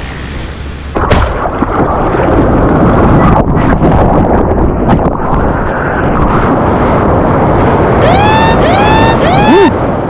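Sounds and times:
wind buffeting microphone: 1.0s - 10.0s.

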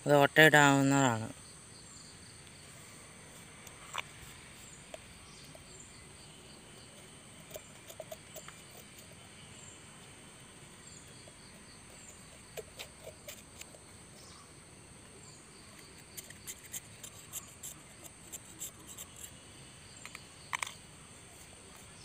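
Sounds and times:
insects chirping: 0.0s - 22.0s
scissors scratching plastic pot: 6.8s - 9.4s, 11.0s - 13.9s, 15.7s - 19.4s.

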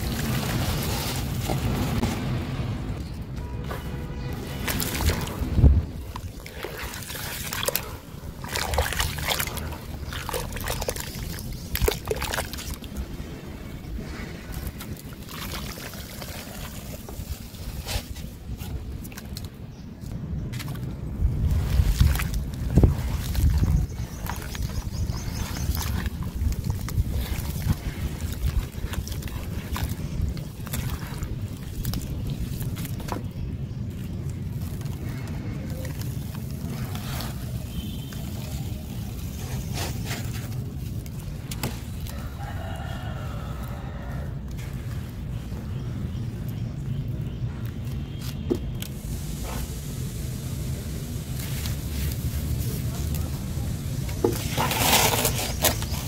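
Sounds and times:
wind rumble on microphone: 0.0s - 7.4s, 16.2s - 40.0s
water splashing: 4.4s - 13.4s, 14.1s - 17.9s, 21.4s - 42.1s
rooster crowing: 42.1s - 44.4s.

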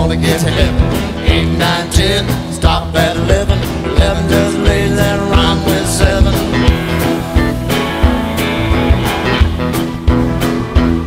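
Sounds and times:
instrumental rock song: 0.0s - 11.0s.

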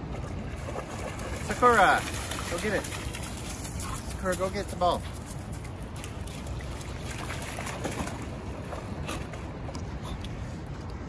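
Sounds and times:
dog splashing through water: 0.2s - 5.2s, 6.0s - 9.4s.

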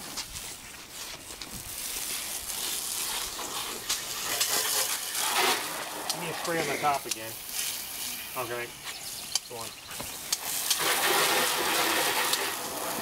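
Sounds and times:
hose water spraying on car: 0.0s - 13.0s.

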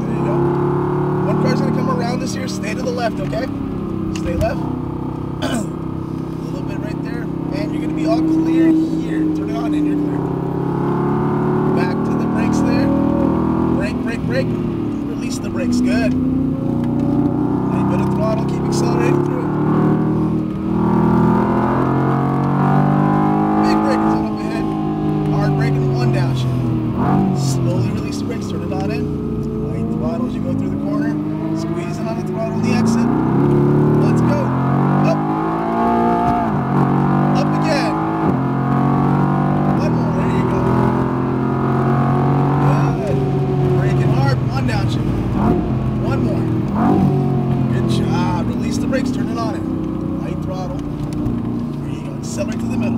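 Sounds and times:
car engine accelerating: 0.0s - 52.9s.

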